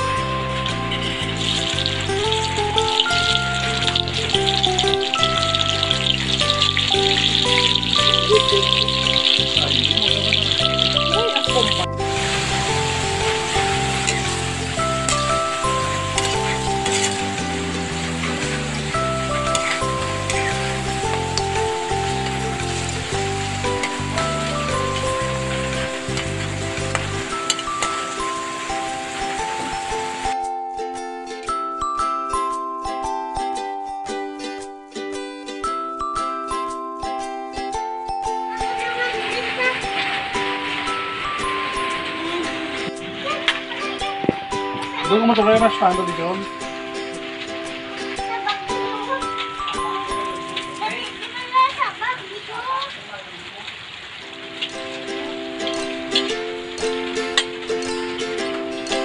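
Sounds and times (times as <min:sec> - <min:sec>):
vegetables sizzling in hot oil: 0:00.0 - 0:30.4, 0:38.4 - 0:59.0
background music with bass line: 0:00.0 - 0:50.9.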